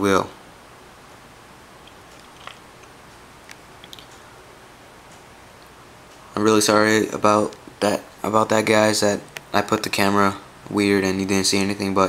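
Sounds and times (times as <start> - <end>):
room hiss: 0.0 - 12.0
hands clicking and rustling on camera: 1.8 - 4.2.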